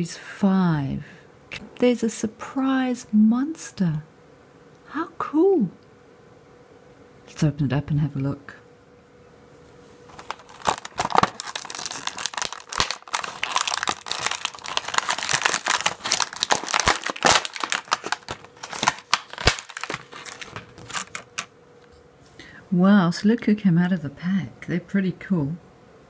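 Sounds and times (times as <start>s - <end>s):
plastic packaging tearing and crinkling: 10.1s - 21.5s.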